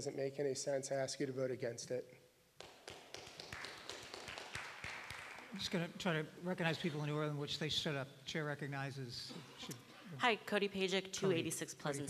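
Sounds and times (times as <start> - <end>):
faint audience applause: 2.6 - 5.8.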